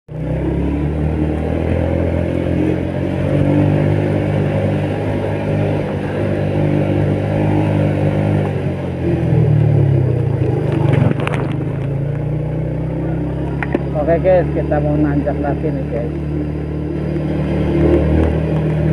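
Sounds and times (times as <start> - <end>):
motorcycle engine running: 0.1 - 18.9.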